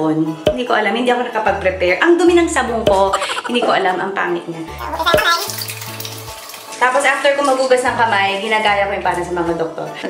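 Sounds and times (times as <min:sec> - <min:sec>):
tap water running onto hands: 0:04.8 - 0:07.9.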